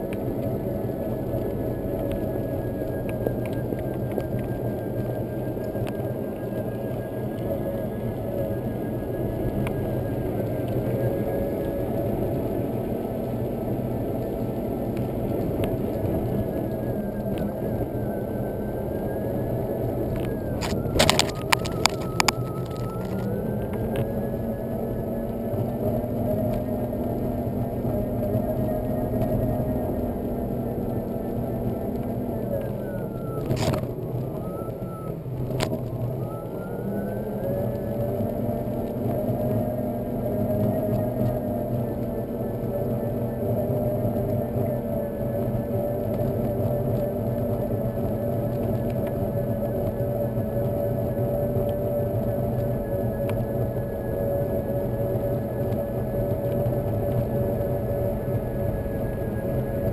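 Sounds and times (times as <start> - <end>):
tyre rumbling on wet road: 8.1 - 32.7, 37.4 - 59.9.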